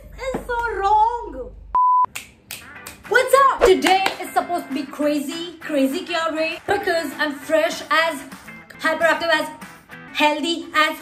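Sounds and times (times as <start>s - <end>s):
woman speaking: 0.0s - 1.6s, 3.1s - 9.6s
sharp finger snaps: 2.1s - 4.2s.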